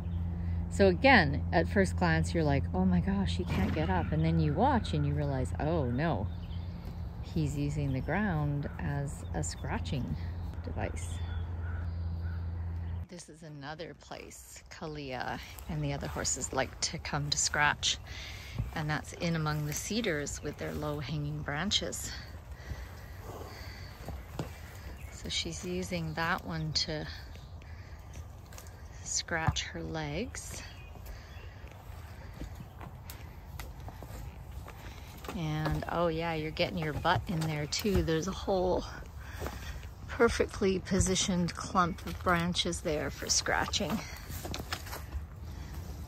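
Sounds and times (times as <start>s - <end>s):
steady low hum: 0.0s - 46.0s
faint bird calls: 3.4s - 13.1s, 17.8s - 35.9s
horse stepping on forest floor: 15.1s - 46.0s.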